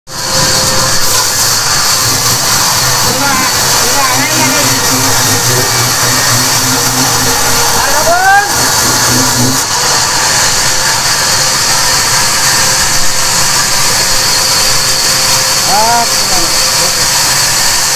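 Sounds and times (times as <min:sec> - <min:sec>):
band saw cutting wood: 0:00.1 - 0:17.9.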